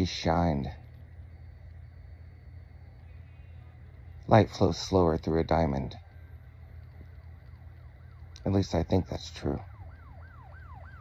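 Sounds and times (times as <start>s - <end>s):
faint siren: 0.0s - 11.0s
steady low hum: 0.0s - 11.0s.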